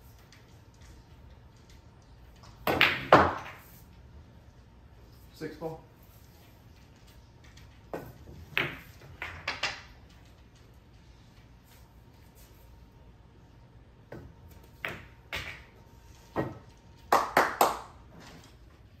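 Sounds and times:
pool balls knocking together: 0:02.4 - 0:03.7, 0:07.9 - 0:10.1, 0:14.1 - 0:18.0
cue striking ball: 0:02.6 - 0:03.6.

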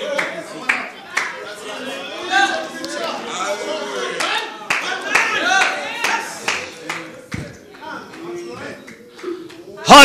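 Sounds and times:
congregation clapping: 0:00.0 - 0:01.6, 0:04.2 - 0:10.0.

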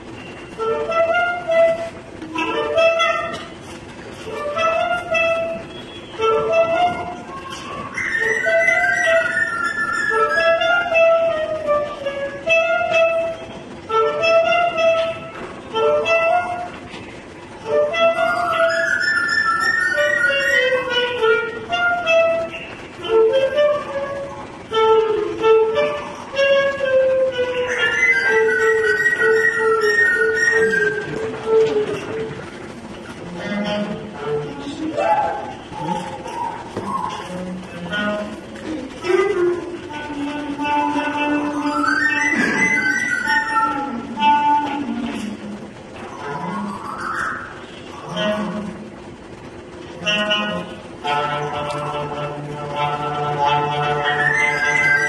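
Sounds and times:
clarinet phrases: 0:00.3 - 0:49.2, 0:49.9 - 0:55.0.

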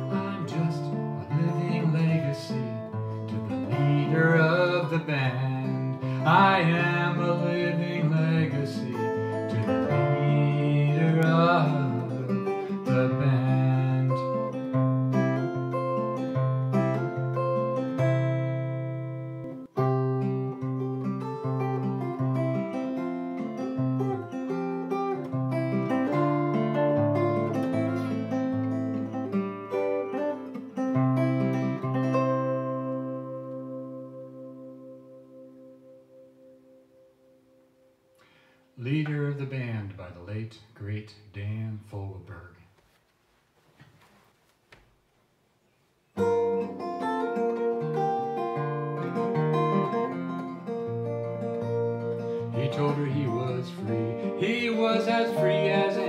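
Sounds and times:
wordless singing voice: 0:00.0 - 0:14.6, 0:52.4 - 0:56.0
acoustic guitar picking and chords: 0:00.0 - 0:42.5, 0:46.1 - 0:56.0.

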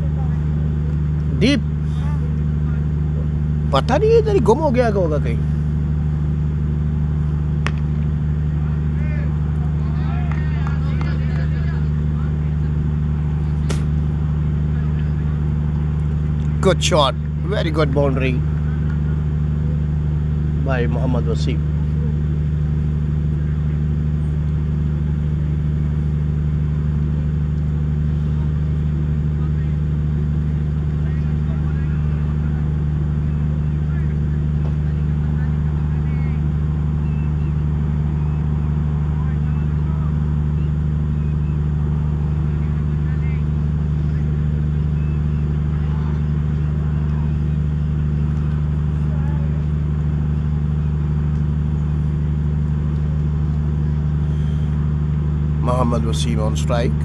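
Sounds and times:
low machine hum: 0:00.0 - 0:57.0
faint distant voices: 0:08.4 - 0:24.4, 0:28.1 - 0:52.5.

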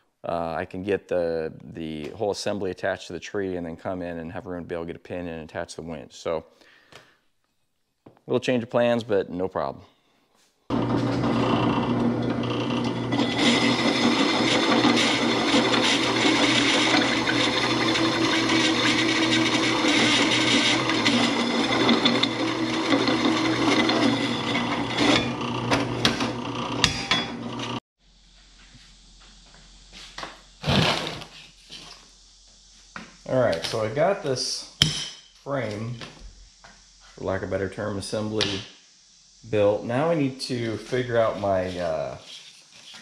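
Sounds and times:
drill press cutting steel: 0:10.7 - 0:27.8.

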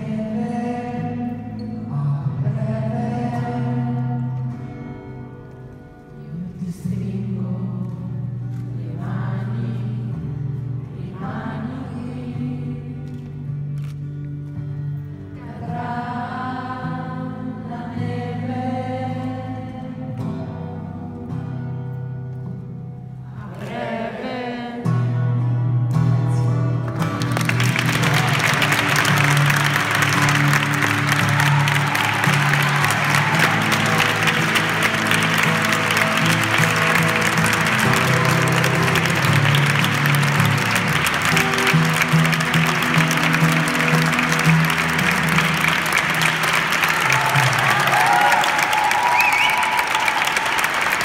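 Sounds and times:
audience applauding: 0:26.9 - 0:51.0.

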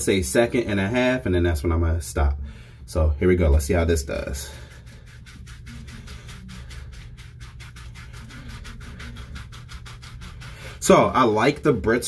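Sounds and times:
scrubber scratching on wet skin: 0:03.5 - 0:12.0.

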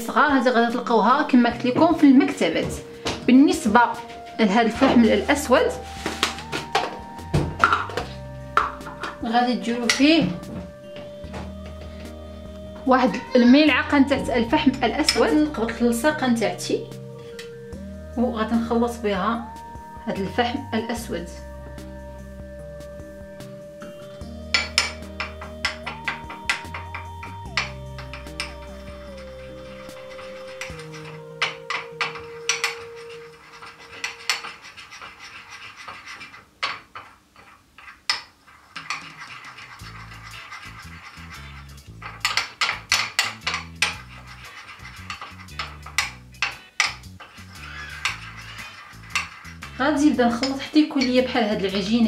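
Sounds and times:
metal spoon scraping ceramic dish: 0:14.1 - 0:15.8, 0:23.8 - 0:52.0.

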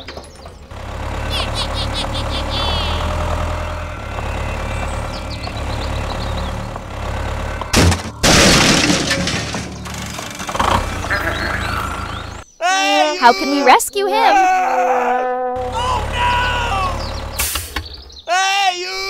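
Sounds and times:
tractor engine running: 0:00.0 - 0:12.5, 0:15.6 - 0:18.1
loud crash: 0:07.7 - 0:11.0.

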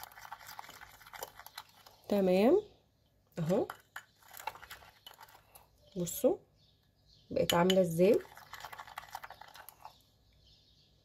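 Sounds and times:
plastic spoon stirring paste in bowl: 0:00.0 - 0:02.4, 0:03.4 - 0:06.0, 0:07.3 - 0:10.3.

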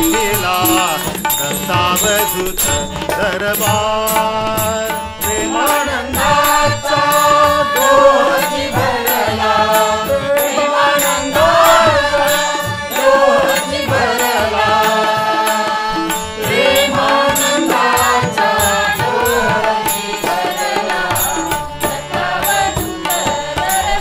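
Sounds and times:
harmonium melody: 0:00.0 - 0:24.0
tabla: 0:00.0 - 0:24.0.

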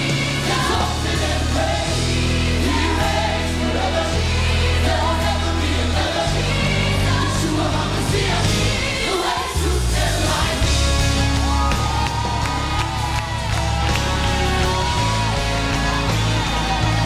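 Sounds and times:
choir singing: 0:00.0 - 0:11.2
singers at microphones: 0:00.0 - 0:17.0
band playing: 0:05.8 - 0:17.0
sustained low bass notes: 0:09.6 - 0:17.0.

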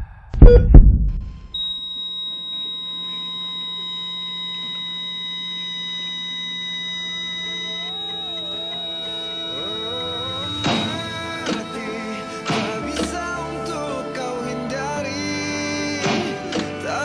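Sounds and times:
heart monitor flatline beep: 0:00.4 - 0:13.6
soft music: 0:07.7 - 0:17.0.

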